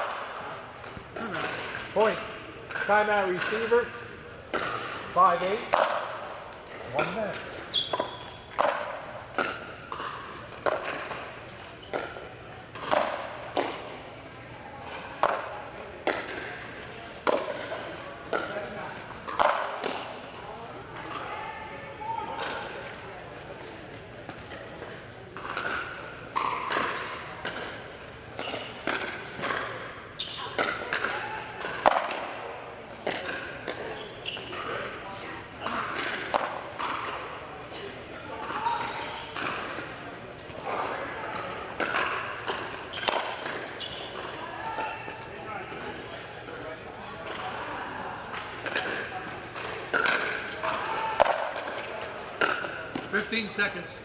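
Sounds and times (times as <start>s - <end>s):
voices echoing in a hall: 0.0s - 9.5s, 11.2s - 54.0s
balls popping off paddles: 4.5s - 13.9s, 14.9s - 20.2s, 24.3s - 40.0s, 40.6s - 46.6s, 48.3s - 53.7s.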